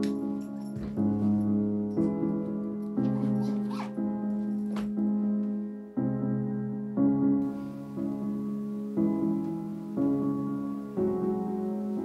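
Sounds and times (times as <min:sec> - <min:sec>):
soft piano music: 0:00.0 - 0:12.0
suitcase zipper rasps: 0:03.3 - 0:04.0.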